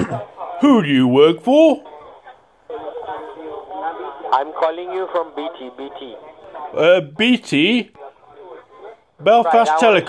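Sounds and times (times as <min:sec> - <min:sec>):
man talking over phone loudspeaker: 0:00.0 - 0:10.0.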